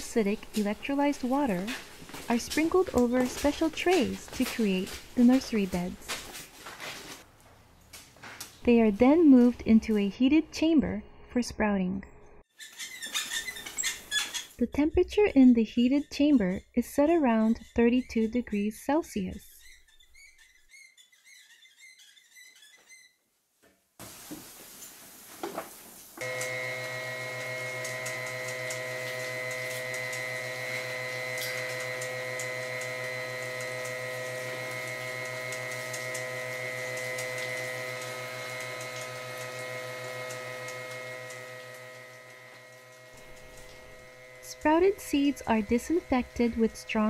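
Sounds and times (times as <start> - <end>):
water spraying: 24.0 - 47.0
conveyor motor humming: 26.2 - 47.0.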